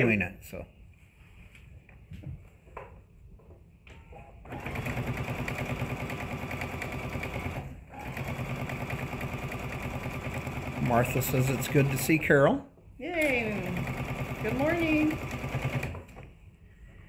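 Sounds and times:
electric sewing machine stitching: 4.5s - 12.2s, 13.3s - 16.2s.

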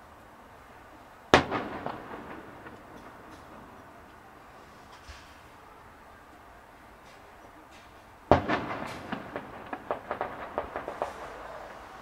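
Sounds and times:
faint firework pops: 1.3s - 4.2s, 7.0s - 12.0s
firework bang: 1.3s - 5.7s, 7.8s - 12.0s.

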